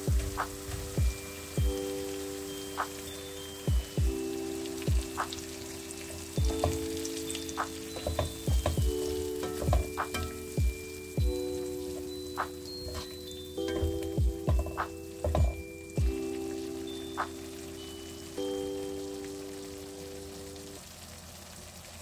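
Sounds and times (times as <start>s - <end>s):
background music with held chords: 0.0s - 20.8s
food sizzling in a pan: 0.0s - 22.0s.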